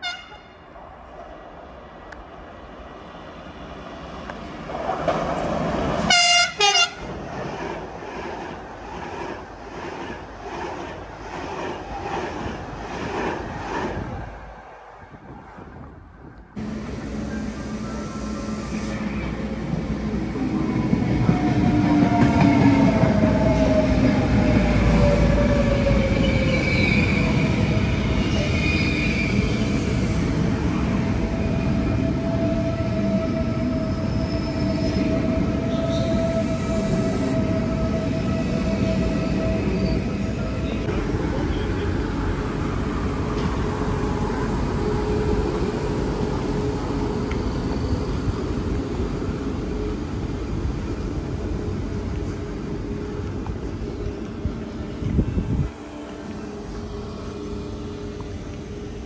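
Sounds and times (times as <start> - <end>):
train horn: 0.0 - 0.6, 6.1 - 7.1, 32.8 - 42.7
train rolling rumble: 0.7 - 59.0
electric train whine: 16.6 - 59.0.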